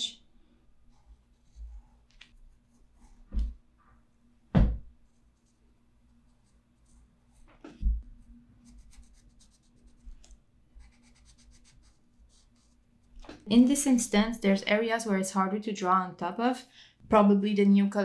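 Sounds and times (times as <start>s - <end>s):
pencil scratching on paper: 8.6s - 10.2s, 10.8s - 12.9s.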